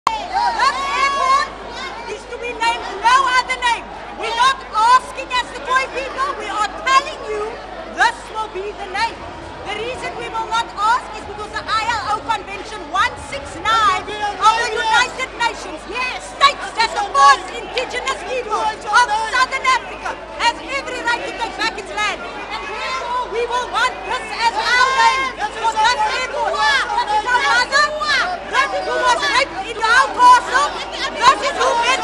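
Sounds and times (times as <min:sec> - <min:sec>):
people chattering: 0:00.1 - 0:32.0
woman talking: 0:02.1 - 0:19.8
woman speaking into a microphone: 0:02.1 - 0:32.0.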